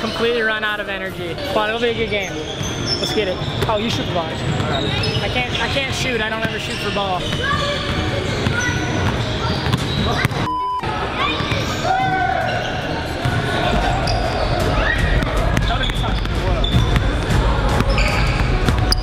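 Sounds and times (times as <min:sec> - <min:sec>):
voices in echoing hall: 0:00.0 - 0:19.0.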